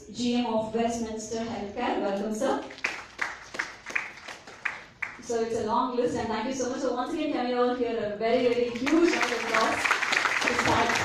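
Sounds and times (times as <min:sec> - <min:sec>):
scattered handclaps: 0:02.7 - 0:05.2, 0:08.8 - 0:11.0.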